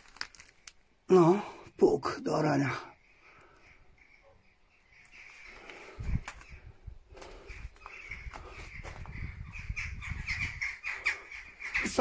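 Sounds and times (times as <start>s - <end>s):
crows calling: 2.5s - 12.0s.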